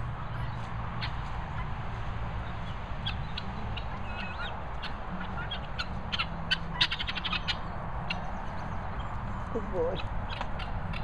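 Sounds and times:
guineafowl harsh clicking calls: 0:02.6 - 0:11.0.

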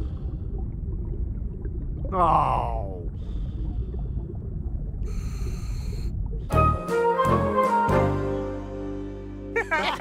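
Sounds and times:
low underwater rumble: 0:00.0 - 0:06.7.

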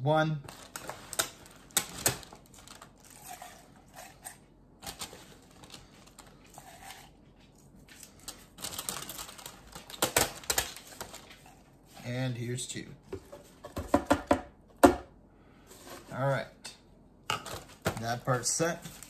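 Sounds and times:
plastic cup knocking and rustling: 0:13.1 - 0:15.1.

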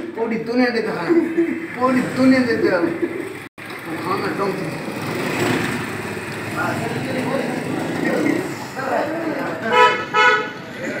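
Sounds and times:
vehicle horn beeping: 0:09.6 - 0:10.7.

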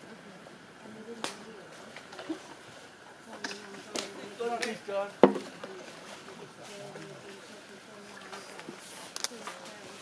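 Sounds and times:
wooden poles knocking: 0:05.2 - 0:05.5.

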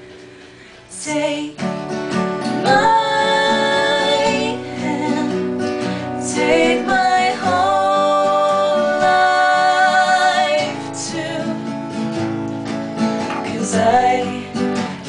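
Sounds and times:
acoustic guitars: 0:00.0 - 0:15.0
women singing in harmony: 0:00.9 - 0:01.8, 0:02.4 - 0:12.0, 0:13.3 - 0:15.0.

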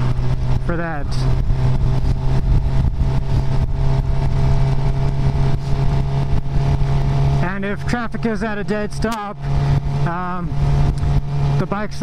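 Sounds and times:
motorcycle engine cruising: 0:00.0 - 0:12.0
wind noise on microphone: 0:00.0 - 0:12.0.

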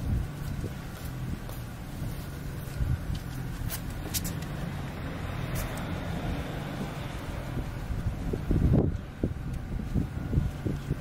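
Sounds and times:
low engine hum: 0:00.0 - 0:11.0
vehicle passing road noise: 0:00.0 - 0:11.0
wind gusts on microphone: 0:00.0 - 0:11.0.

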